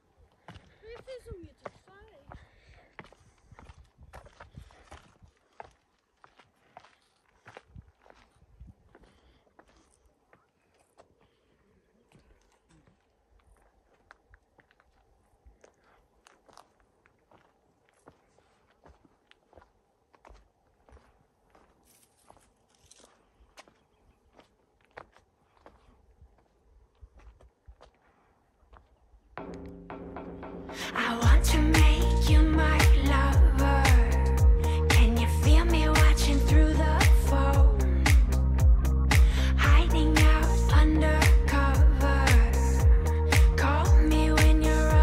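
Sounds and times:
footsteps on stone path: 0:00.2 - 0:30.2
people talking: 0:00.8 - 0:02.4, 0:30.9 - 0:42.8.

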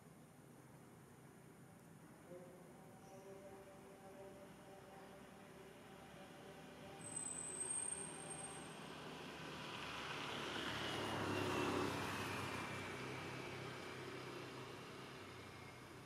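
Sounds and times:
motor vehicle passing by: 0:06.5 - 0:16.0
thin high whistle: 0:07.0 - 0:08.7.

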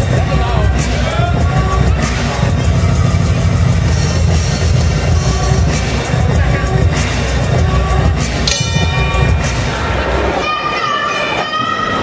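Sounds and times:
loud music with heavy bass: 0:00.0 - 0:10.4.

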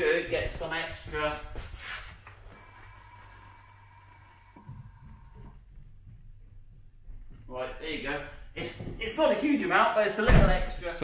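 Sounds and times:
air suspension whine and hiss: 0:01.6 - 0:05.7
low hum: 0:02.2 - 0:08.6.

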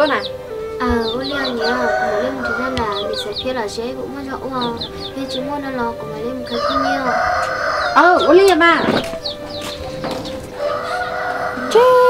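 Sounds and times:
chickens clucking: 0:00.0 - 0:12.0
sustained notes and wavering melody: 0:00.0 - 0:12.0.

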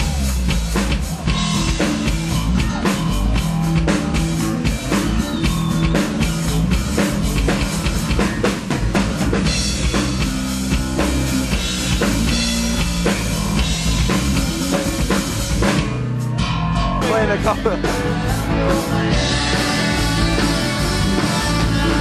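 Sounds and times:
drum kit beat: 0:00.0 - 0:22.0
electric guitar: 0:00.0 - 0:22.0
rock band playing live: 0:00.0 - 0:22.0.

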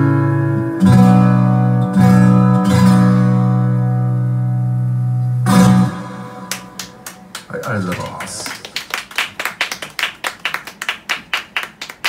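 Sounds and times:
acoustic guitar chord: 0:00.0 - 0:07.3
audience clapping: 0:06.4 - 0:12.0
person speaking: 0:07.4 - 0:08.8.

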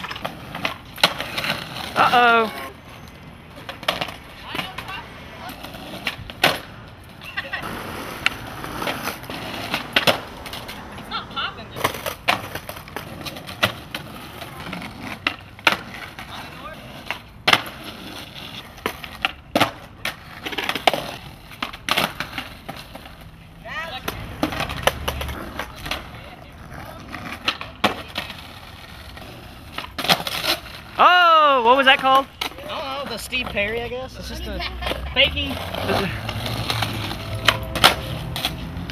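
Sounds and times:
skateboard clacks: 0:00.0 - 0:02.8, 0:03.5 - 0:31.2, 0:31.9 - 0:38.9
skateboard wheels rolling: 0:00.0 - 0:38.9.

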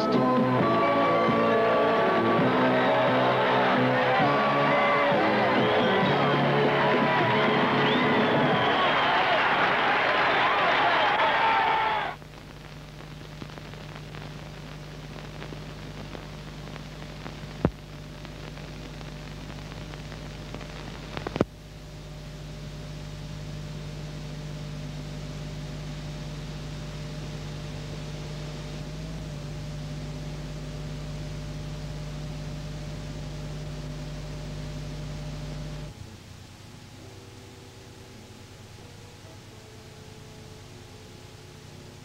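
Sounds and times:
low electrical hum: 0:00.0 - 0:42.0
tape hiss: 0:00.0 - 0:42.0.

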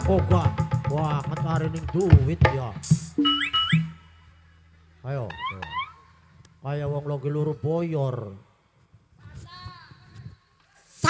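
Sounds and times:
live band music: 0:02.2 - 0:04.4.

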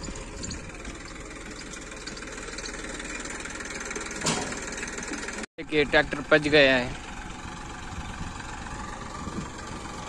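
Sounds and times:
diesel tractor engine running: 0:00.0 - 0:10.0.

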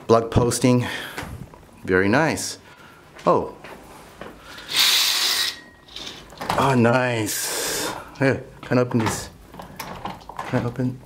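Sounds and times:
curtain sliding along rail: 0:04.5 - 0:06.8.

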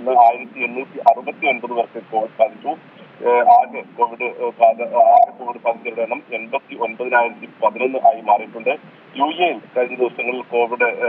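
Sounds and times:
man speaking over telephone line: 0:00.0 - 0:11.0.

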